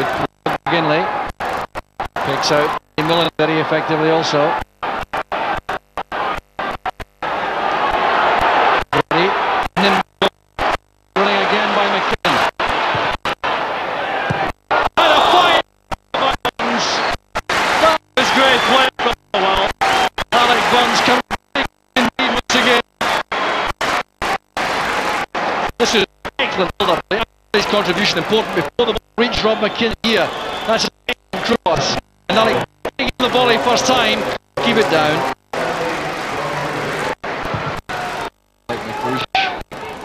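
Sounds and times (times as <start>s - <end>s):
broken-up voices: 0.0s - 40.0s.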